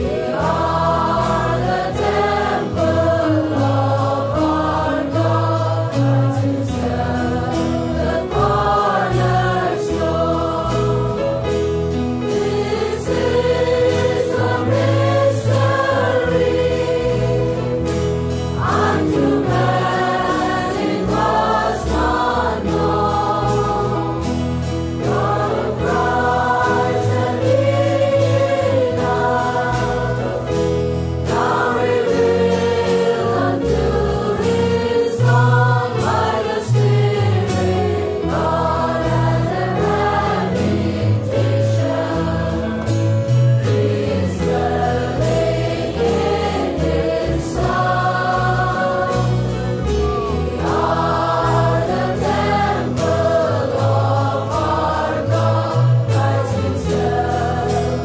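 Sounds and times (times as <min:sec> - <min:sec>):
choir singing gospel: 0:00.0 - 0:58.0
percussion: 0:00.0 - 0:58.0.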